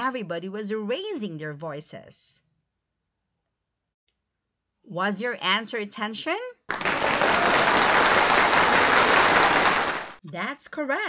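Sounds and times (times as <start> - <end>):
applause: 6.7 - 10.2.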